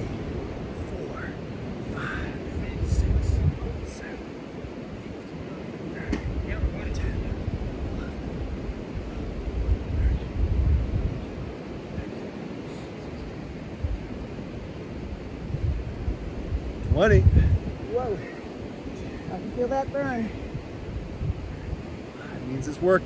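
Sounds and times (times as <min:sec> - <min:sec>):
surf washing: 0:00.0 - 0:23.0
wind buffeting the microphone: 0:00.0 - 0:23.0.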